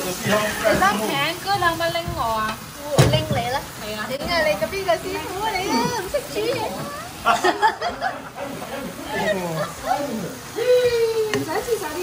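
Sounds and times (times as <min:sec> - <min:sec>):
people talking overlapping: 0:00.0 - 0:12.0.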